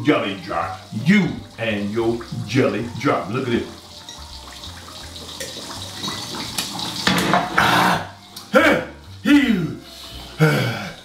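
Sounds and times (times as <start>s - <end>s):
fish sizzling in hot oil: 0.0s - 11.0s
man groaning: 7.6s - 9.8s
man exhaling loudly: 7.6s - 11.0s.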